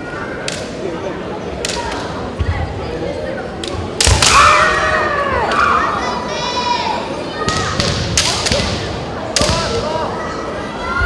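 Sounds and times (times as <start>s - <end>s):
background murmur: 0.0s - 11.0s.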